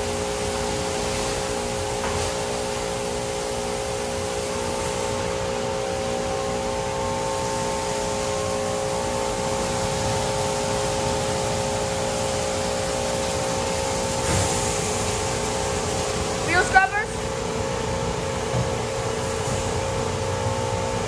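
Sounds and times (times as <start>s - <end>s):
water spraying: 0.0s - 21.0s.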